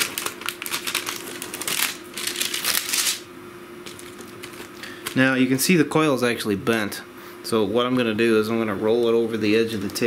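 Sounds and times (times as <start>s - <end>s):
paper and plastic crinkling: 0.0s - 3.2s, 3.8s - 5.4s
paper peeled off tape: 0.0s - 3.2s.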